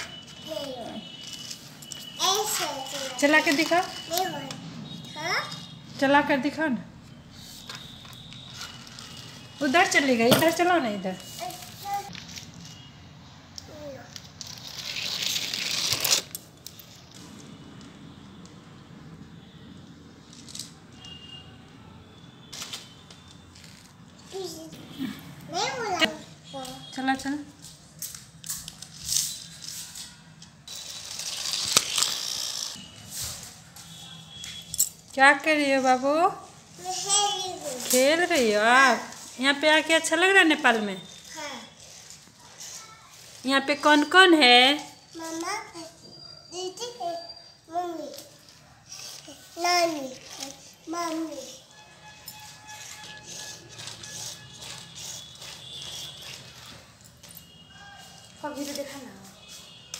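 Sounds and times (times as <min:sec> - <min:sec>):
plastic toy scraping and rattling: 0:14.4 - 0:16.9, 0:28.7 - 0:32.8, 0:41.3 - 0:43.5, 0:48.9 - 0:51.6, 0:52.3 - 0:56.9
toy mechanism clicking: 0:30.7 - 0:32.8.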